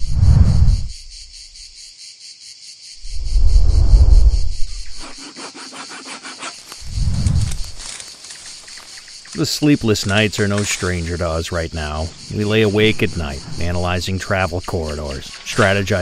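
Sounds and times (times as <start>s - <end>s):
insects chirping: 0.0s - 16.0s.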